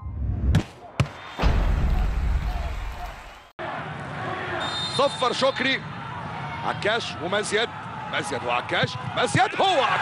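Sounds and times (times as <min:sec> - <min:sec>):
stadium crowd noise: 0:00.6 - 0:10.0.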